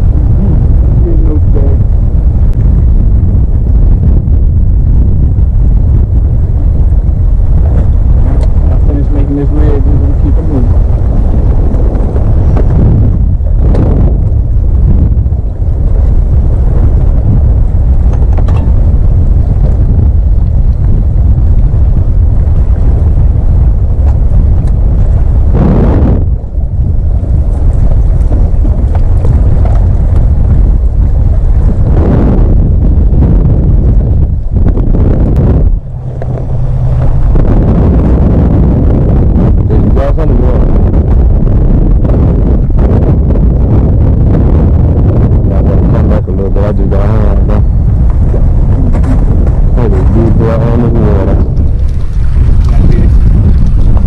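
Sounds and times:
wind buffeting microphone: 0:00.0 - 0:54.0
water noise: 0:47.4 - 0:54.0.

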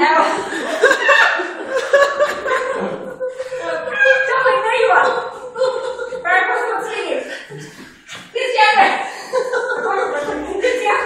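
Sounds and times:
people laughing loudly: 0:00.0 - 0:07.8, 0:08.9 - 0:11.0.

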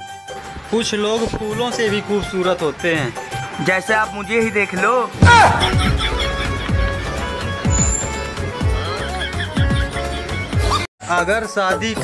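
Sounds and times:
background music with low beat: 0:00.0 - 0:10.8.

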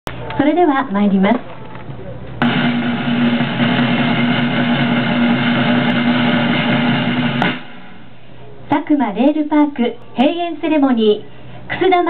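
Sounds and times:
drum roll: 0:02.4 - 0:08.4.

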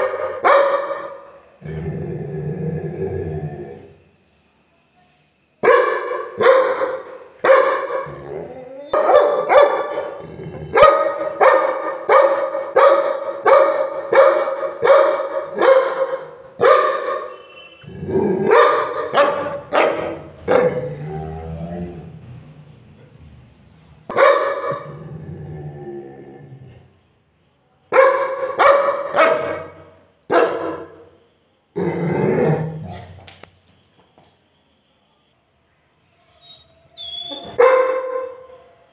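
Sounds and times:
large dog barking: 0:00.0 - 0:01.9, 0:05.6 - 0:22.1, 0:24.1 - 0:25.4, 0:27.9 - 0:31.1, 0:37.5 - 0:38.6.

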